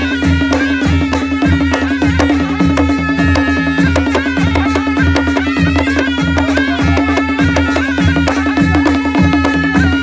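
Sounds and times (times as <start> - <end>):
drum and cymbal beat: 0.0 - 10.0.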